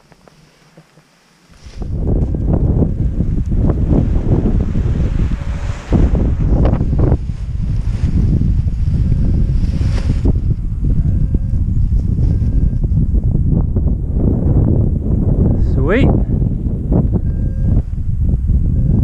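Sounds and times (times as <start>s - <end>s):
wind buffeting microphone: 1.6s - 19.0s.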